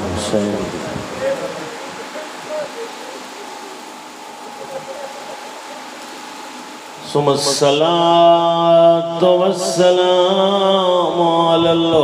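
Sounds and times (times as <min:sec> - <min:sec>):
distant murmuring voices: 0:00.0 - 0:08.6
faint high hum: 0:00.0 - 0:11.9
background hiss: 0:00.0 - 0:12.0.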